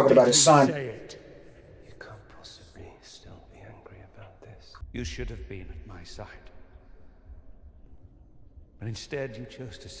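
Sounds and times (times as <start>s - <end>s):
faint whispered speech: 1.7s - 4.8s.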